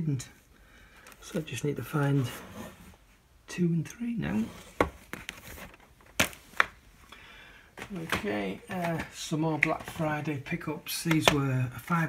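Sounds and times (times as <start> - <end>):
faint handling noise: 0.9 - 7.0, 7.7 - 11.8
plastic case clicks: 11.1 - 11.4.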